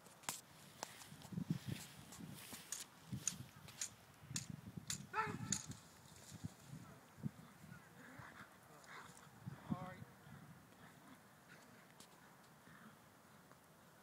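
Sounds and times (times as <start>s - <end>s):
scattered clicks: 1.8s - 5.8s.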